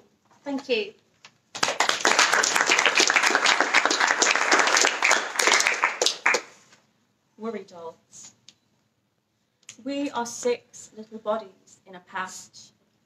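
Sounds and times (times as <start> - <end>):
small audience applauding: 1.5 - 6.6.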